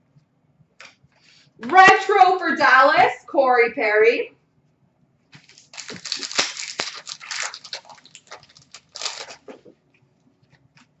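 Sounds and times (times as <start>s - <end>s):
cards being shuffled: 5.4s - 9.7s.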